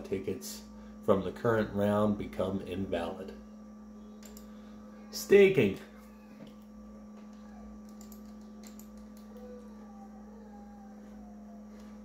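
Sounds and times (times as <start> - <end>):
low electrical hum: 0.0 - 12.0
computer mouse clicks: 7.8 - 9.4.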